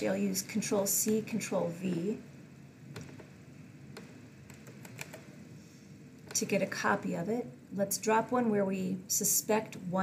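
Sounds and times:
keyboard and mouse clicks: 2.9 - 3.3, 3.9 - 5.3.

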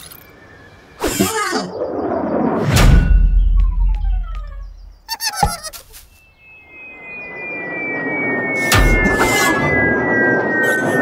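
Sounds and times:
long falling whistle: 6.4 - 11.0.

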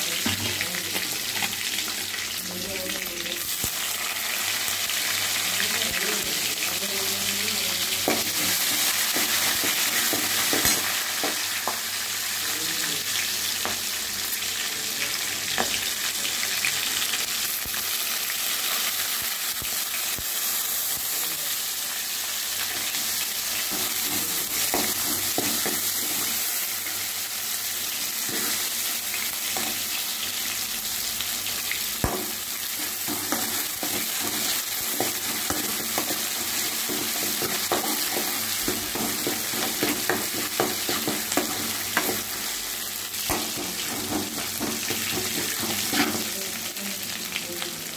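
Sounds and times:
spices sizzling in hot oil: 0.0 - 47.9.

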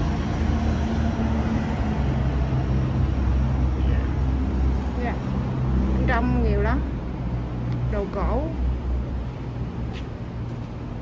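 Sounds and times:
vehicle engine rumble: 0.0 - 11.0.

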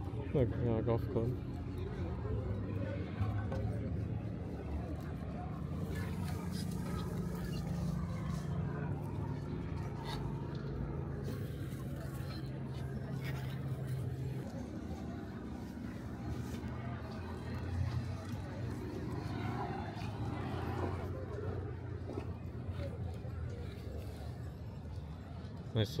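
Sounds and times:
faint background voices: 0.0 - 26.0.

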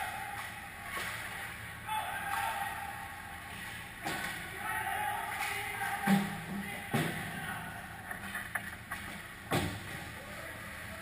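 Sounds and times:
distant players shouting: 1.8 - 3.4, 4.0 - 8.2.

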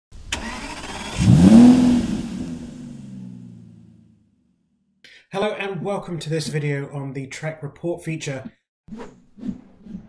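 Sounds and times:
car engine revving: 0.3 - 4.2.

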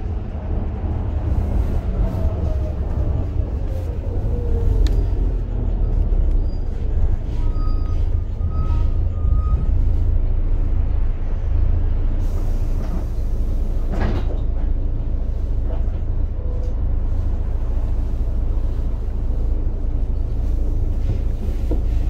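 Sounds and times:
bus diesel engine drone: 0.0 - 22.0
rattles and knocks from bus body: 12.7 - 16.2, 20.8 - 22.0.

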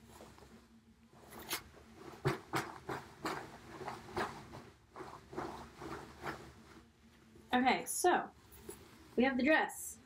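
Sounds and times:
dress fabric rustling: 0.0 - 9.7.

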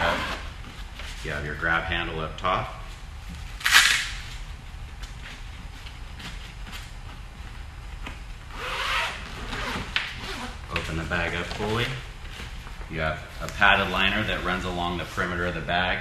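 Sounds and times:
zipper rasp: 0.0 - 0.5, 8.5 - 10.6.

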